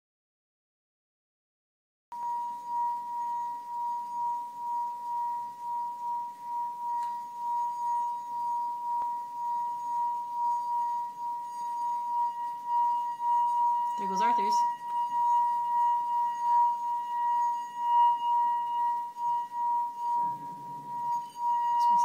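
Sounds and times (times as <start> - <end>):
singing wine glass tone: 2.1 - 22.0.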